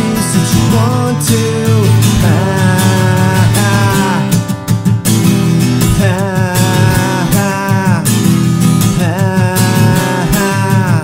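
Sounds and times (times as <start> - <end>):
man singing: 0.0 - 4.6, 5.2 - 11.0
acoustic guitar strumming: 0.0 - 11.0.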